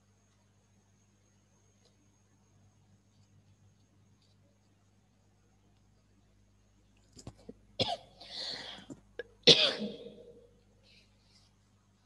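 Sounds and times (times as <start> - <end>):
person coughing: 7.8 - 10.4.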